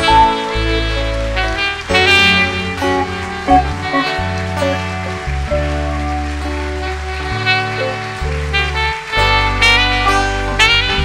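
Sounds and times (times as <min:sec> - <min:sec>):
sustained chords: 0:00.0 - 0:08.8
held bass notes: 0:00.0 - 0:11.0.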